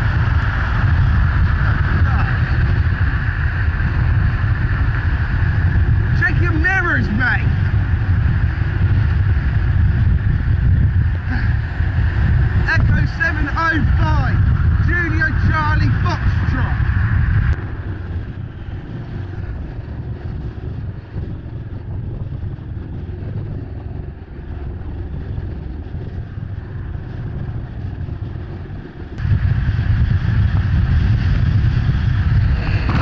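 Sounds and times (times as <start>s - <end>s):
road noise: 0.0s - 33.0s
wind rushing over microphone: 0.0s - 33.0s.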